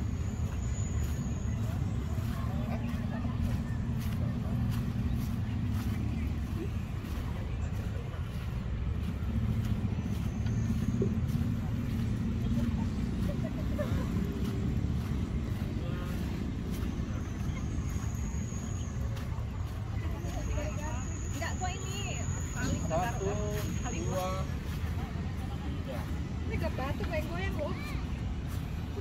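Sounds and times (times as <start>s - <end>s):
distant voices: 0.0s - 29.0s.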